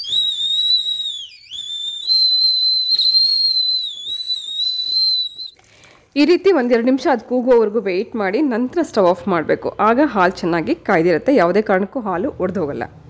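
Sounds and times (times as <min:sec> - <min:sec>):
milk cooker whistling: 0:00.0 - 0:05.6.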